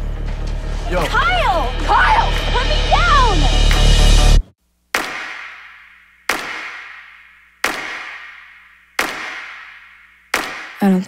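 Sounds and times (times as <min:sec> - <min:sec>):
sharp ringing impact bangs: 0:05.0 - 0:10.8.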